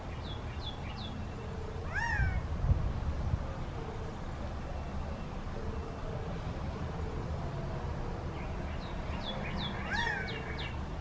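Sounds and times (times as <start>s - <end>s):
quail call rising and falling: 1.8s - 2.4s.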